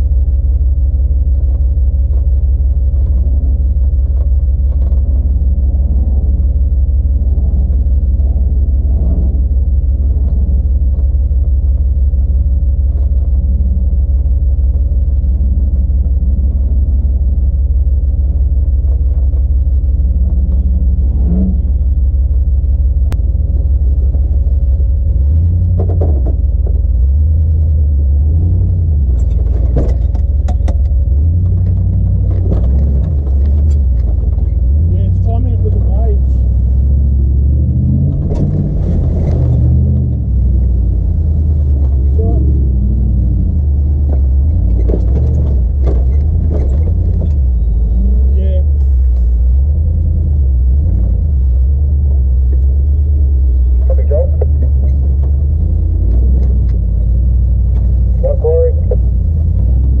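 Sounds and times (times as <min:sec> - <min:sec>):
engine running at low revs: 0:00.0 - 1:00.0.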